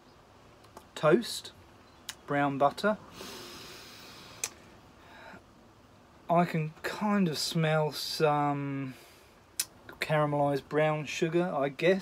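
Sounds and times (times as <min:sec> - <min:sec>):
faint breathing out: 0:03.1 - 0:05.5.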